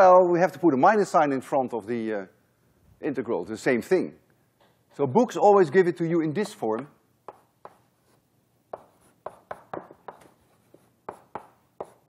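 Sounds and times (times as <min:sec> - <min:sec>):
chalk writing on blackboard: 0:06.4 - 0:12.0.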